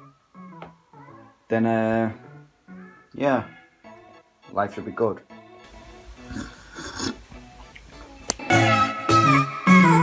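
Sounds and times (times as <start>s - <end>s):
person sipping from a mug: 6.2s - 7.9s.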